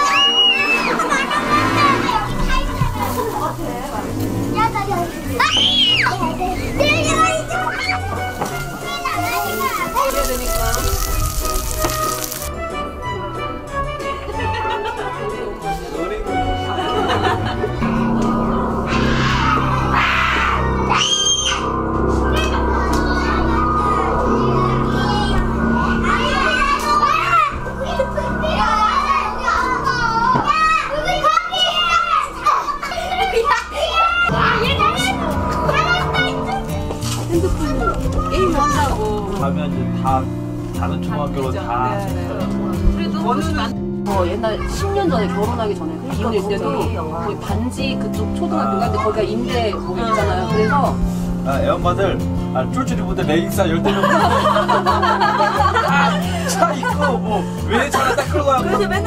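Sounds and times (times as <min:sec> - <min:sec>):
children calling out: 0:00.0 - 0:03.6, 0:04.5 - 0:12.5, 0:16.7 - 0:39.1
background music with bass line: 0:00.0 - 0:31.0, 0:33.9 - 0:59.0.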